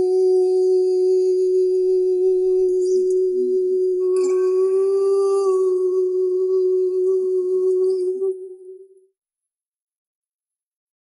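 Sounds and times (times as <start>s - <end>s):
wordless sung note: 0.0s - 9.2s.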